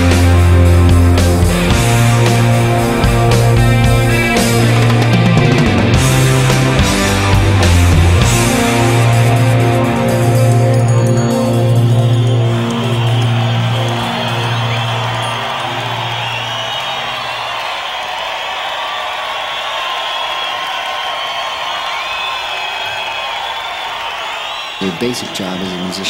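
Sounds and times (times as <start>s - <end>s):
rock band chord ringing: 0.0s - 18.2s
arena crowd cheering: 0.0s - 26.0s
crowd whistles: 0.0s - 26.0s.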